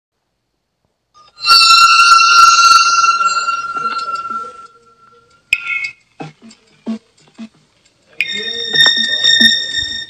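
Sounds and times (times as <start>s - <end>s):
bright ringing chime: 1.2s - 5.9s, 8.2s - 10.0s.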